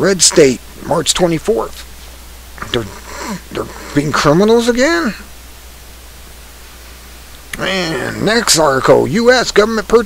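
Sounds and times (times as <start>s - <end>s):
person speaking: 0.0s - 5.5s, 7.0s - 10.0s
low hum: 0.0s - 9.8s
background hiss: 0.0s - 10.0s.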